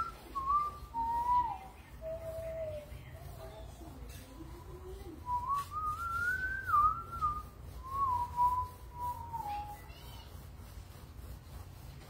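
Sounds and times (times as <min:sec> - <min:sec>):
person whistling a slow tune: 0:00.0 - 0:02.8, 0:05.2 - 0:09.7.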